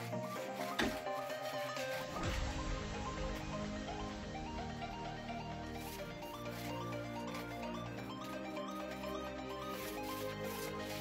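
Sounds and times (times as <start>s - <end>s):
background music: 0.0s - 11.0s
paint roller rubbing on floor: 0.0s - 11.0s.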